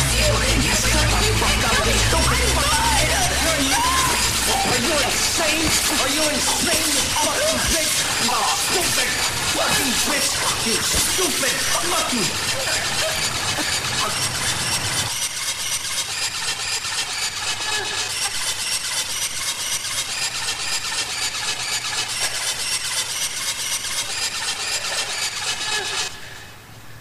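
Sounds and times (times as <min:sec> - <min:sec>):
fast hardcore dance music: 0:00.0 - 0:15.1.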